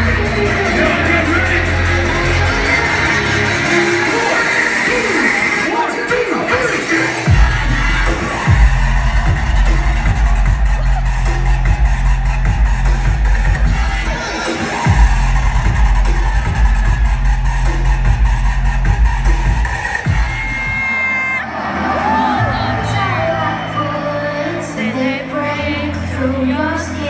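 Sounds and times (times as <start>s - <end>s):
electronic dance music: 0.0s - 26.3s.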